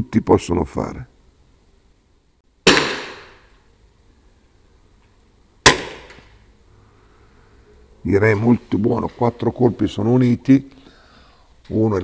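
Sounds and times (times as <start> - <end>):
air rifle shots: 2.6 - 3.5, 5.6 - 6.4.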